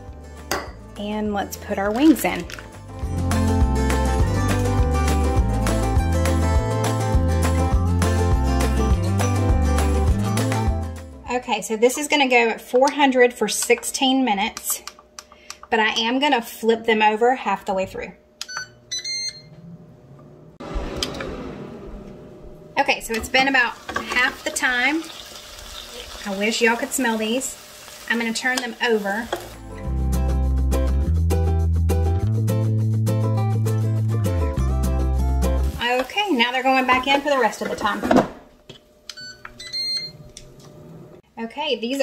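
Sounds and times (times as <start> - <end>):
fan humming faintly: 11.3 - 25.3
fan humming: 16.9 - 29.8
rushing of air: 20.6 - 22.8.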